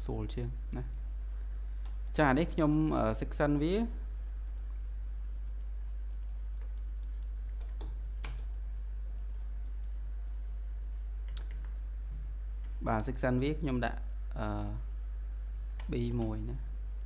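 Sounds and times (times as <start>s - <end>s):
steady low hum: 0.0s - 17.0s
computer mouse and keyboard clicks: 5.4s - 8.6s.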